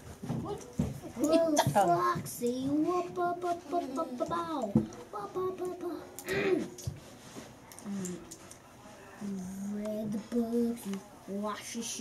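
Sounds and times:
child vocalizing: 5.8 - 6.8.

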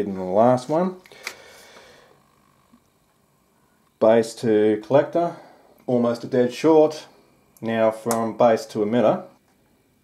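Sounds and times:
test probes clicking: 1.0 - 1.9.

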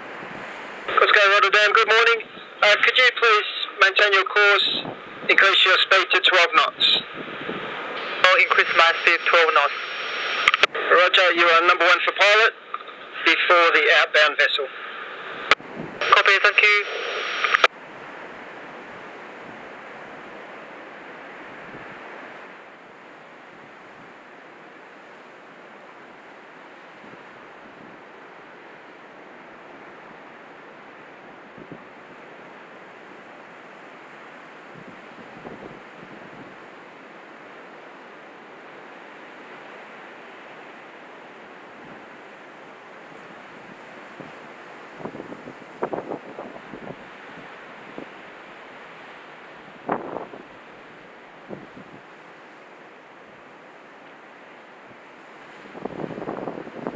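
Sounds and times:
wind buffeting microphone: 0.0 - 0.9, 6.7 - 8.2, 15.4 - 16.1, 21.3 - 22.5, 31.2 - 32.3, 34.6 - 36.7, 43.1 - 48.2, 49.5 - 52.2, 54.9 - 56.9
breaking surf: 0.0 - 56.9.

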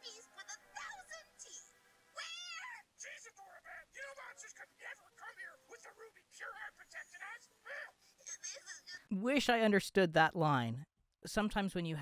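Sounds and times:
high-pitched squeaky cartoon voice: 2.2 - 3.2.

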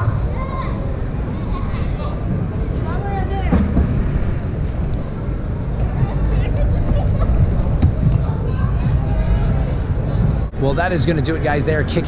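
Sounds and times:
crowd chatter: 0.0 - 12.0
low rumble: 2.2 - 12.0.

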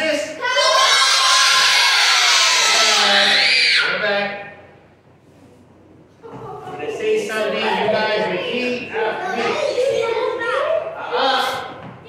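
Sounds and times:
children yelling together: 0.4 - 3.9.

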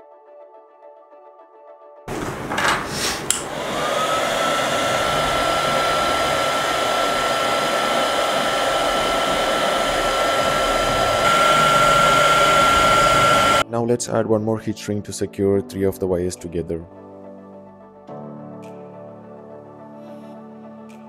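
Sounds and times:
heat gun blowing: 2.1 - 13.6
heat gun switch click: 2.6 - 3.6.

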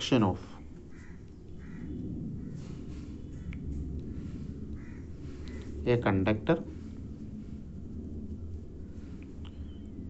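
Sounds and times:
steady low rumble: 0.0 - 10.0
bird calling faintly: 0.9 - 5.8.

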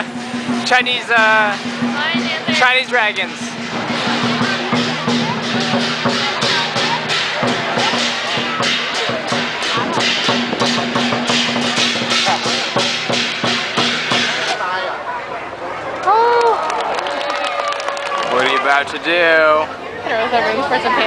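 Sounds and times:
large drum beating: 0.0 - 14.6
cymbals crashing: 0.0 - 14.8.

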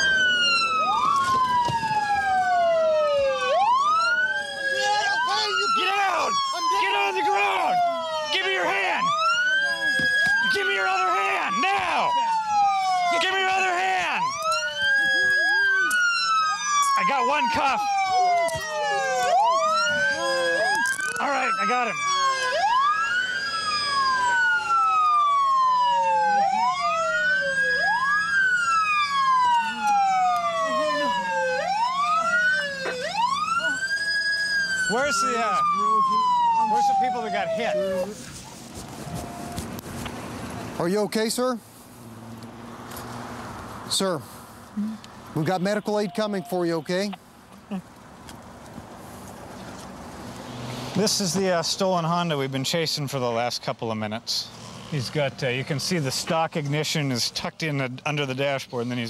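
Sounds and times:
police sirens wailing: 0.0 - 41.0, 45.1 - 47.2.

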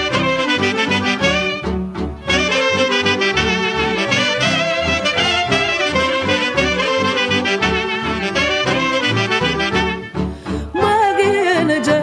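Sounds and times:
folk band with steady beat: 0.0 - 12.0
woman singing with vibrato: 10.7 - 12.0.

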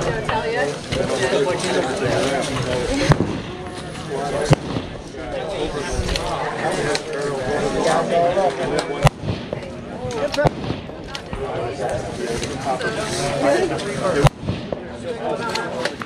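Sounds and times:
people talking: 0.0 - 16.0
rifle shots: 4.4 - 5.0, 10.3 - 11.2.

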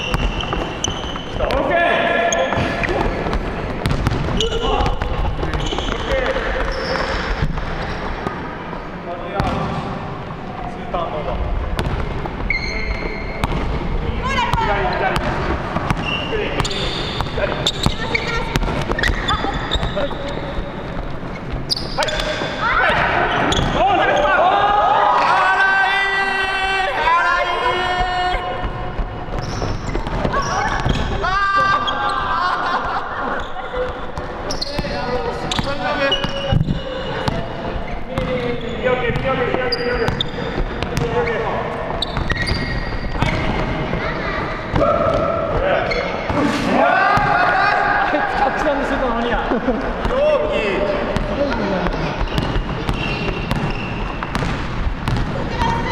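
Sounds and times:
sneakers squeaking: 0.0 - 24.6, 26.9 - 46.5, 48.9 - 55.9
players' voices: 0.0 - 55.9
players shouting: 44.7 - 48.9.

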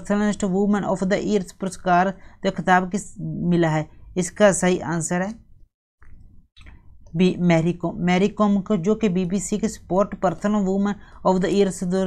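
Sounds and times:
person speaking: 0.0 - 5.5, 7.1 - 12.0.

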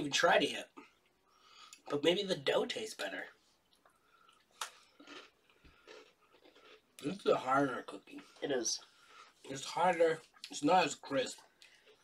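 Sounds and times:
crunchy cookie being chewed: 3.8 - 7.2.

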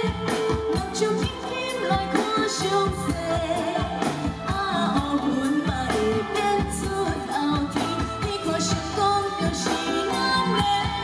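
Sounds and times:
band with steady drum beat: 0.0 - 11.0
woman singing pop song: 0.0 - 11.0.

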